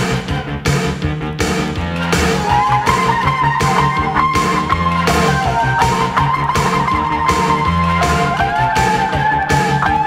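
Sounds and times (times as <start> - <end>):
rock band music: 0.0 - 10.0.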